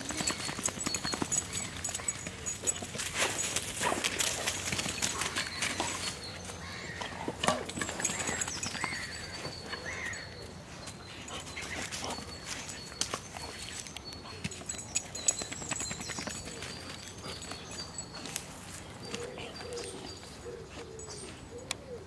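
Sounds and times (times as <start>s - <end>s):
birds calling: 0.0s - 22.0s
low cooing call: 19.1s - 22.0s.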